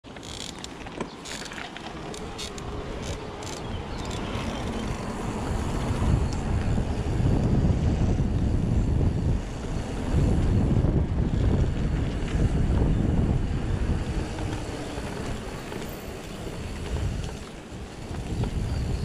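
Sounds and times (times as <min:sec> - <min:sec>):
bike tyres rumbling on asphalt: 0:00.1 - 0:19.0
wind buffeting microphone: 0:01.9 - 0:19.0.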